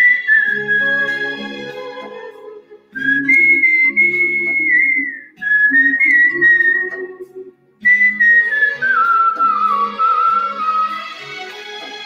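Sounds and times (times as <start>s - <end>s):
person whistling a melody: 0.0s - 1.4s, 3.0s - 11.2s
instrumental backing track: 0.0s - 12.0s.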